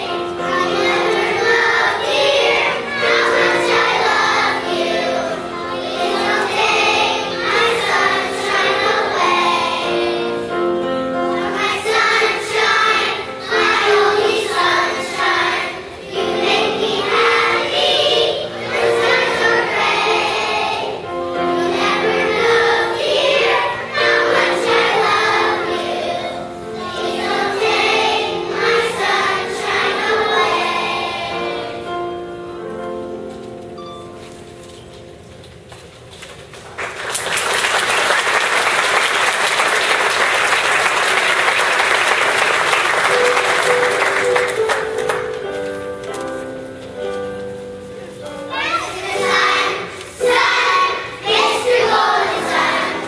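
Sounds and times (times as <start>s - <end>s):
children's choir singing: 0.0s - 33.9s, 36.9s - 53.0s
accompanying music: 0.0s - 53.0s.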